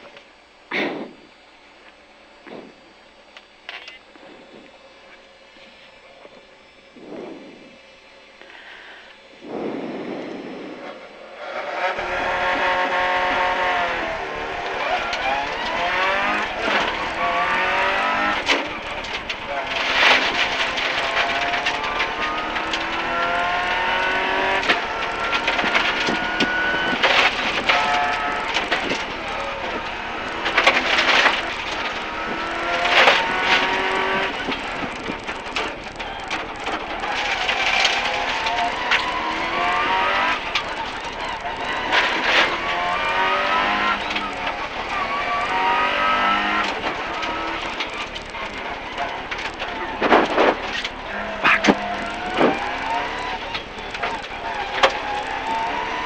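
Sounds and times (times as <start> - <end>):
rally car engine revving through gears: 2.0 - 56.0
loud engine bursts: 4.1 - 56.0.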